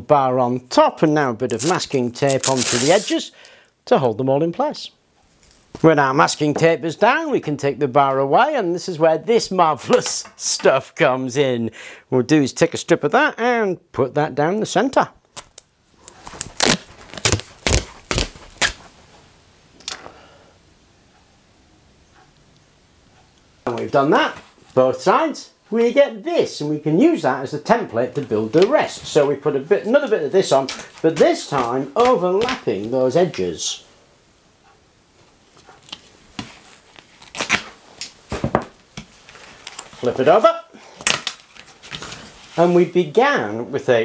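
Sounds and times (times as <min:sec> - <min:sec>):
tape ripping off roll: 0:01.5 - 0:03.3, 0:15.3 - 0:18.9, 0:35.9 - 0:38.6
tape taps and crackles: 0:15.2 - 0:18.8.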